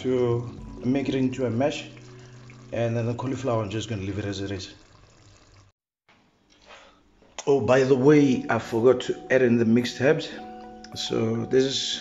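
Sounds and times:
stew bubbling in a pot: 0.6 - 5.8.

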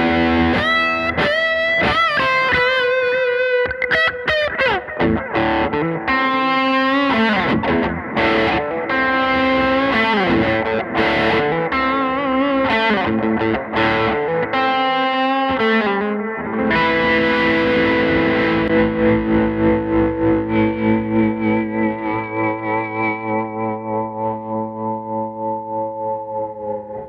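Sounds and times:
electric guitar lead line: 0.0 - 27.0
pulsing electric guitar chord: 0.0 - 27.0.

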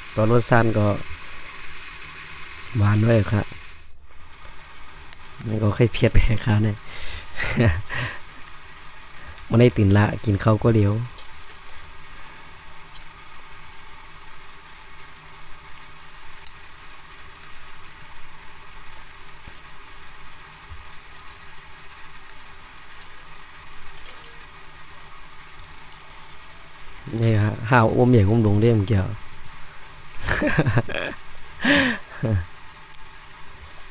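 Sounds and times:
steady background hiss: 0.0 - 33.9.

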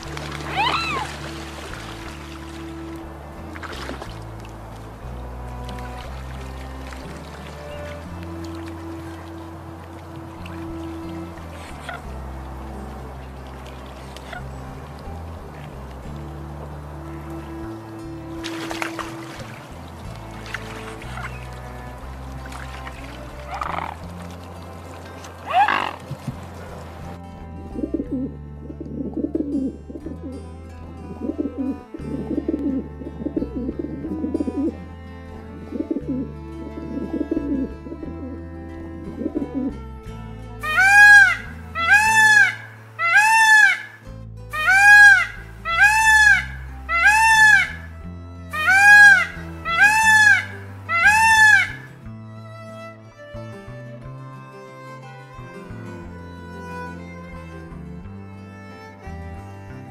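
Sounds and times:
peacock honking calls: 0.0 - 3.3, 4.6 - 15.0, 16.3 - 24.2, 25.3 - 26.1, 40.6 - 51.9
music bed: 0.0 - 59.9
dove cooing: 27.8 - 30.4, 31.1 - 34.7, 35.6 - 38.4, 39.0 - 39.8.

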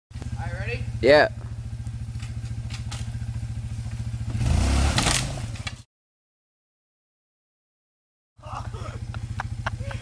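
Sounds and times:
quad engine chugging and revving: 0.2 - 5.8, 8.4 - 10.0.

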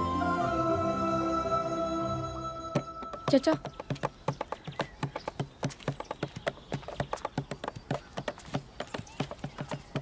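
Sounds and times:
hand drumming on plastic barrel: 2.8 - 10.0.

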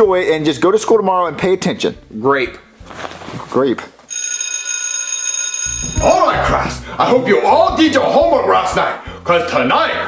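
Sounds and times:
electric school bell ringing: 4.1 - 6.5.

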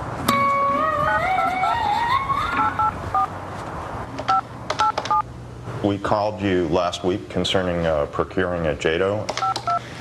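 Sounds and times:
two-tone keypad beeps: 4.3 - 5.2, 9.4 - 9.8.

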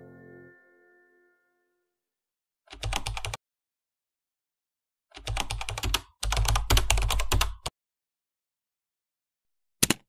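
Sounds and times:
computer keyboard typing: 2.7 - 3.4, 5.1 - 7.7.

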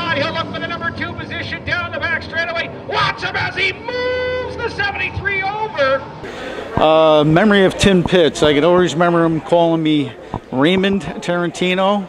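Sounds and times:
man announcing race: 0.0 - 6.1, 6.8 - 12.0.

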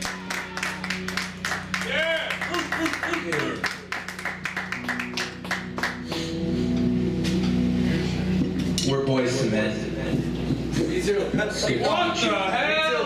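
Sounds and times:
electric bass guitar: 0.0 - 13.0
drum kit playing fast: 10.0 - 12.4.

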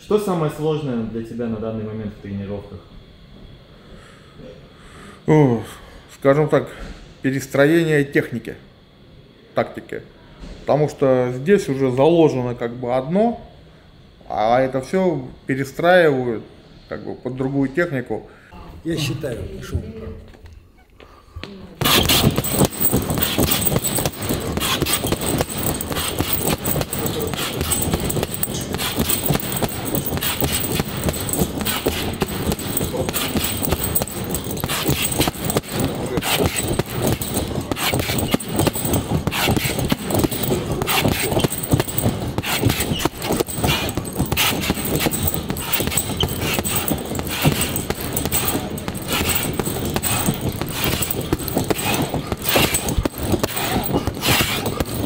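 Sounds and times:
gloves punching heavy bag: 21.8 - 55.0.

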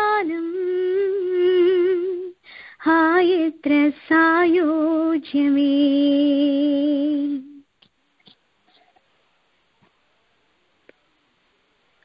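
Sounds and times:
woman singing unaccompanied: 0.0 - 7.7.

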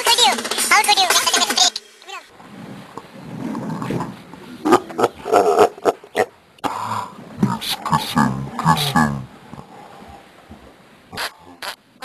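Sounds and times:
low steady hum: 2.2 - 12.0
men's wordless vocal outbursts: 7.4 - 9.3.

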